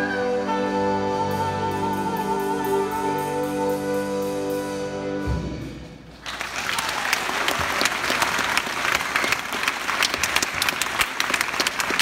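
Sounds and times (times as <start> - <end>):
audience applauding: 6.2 - 12.0.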